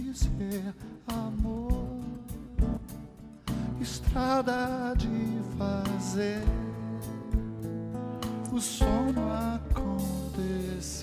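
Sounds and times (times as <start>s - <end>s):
drum kit: 0.0s - 11.0s
strummed guitar: 0.0s - 11.0s
kick drum hits: 5.0s - 5.3s, 6.5s - 6.8s, 7.4s - 7.6s, 9.7s - 10.0s.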